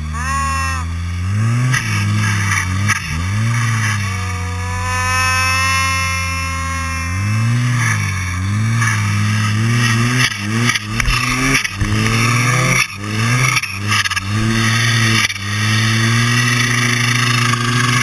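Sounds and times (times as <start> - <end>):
snowmobile engine revving: 0.0 - 18.0
high steady whine: 3.2 - 15.4.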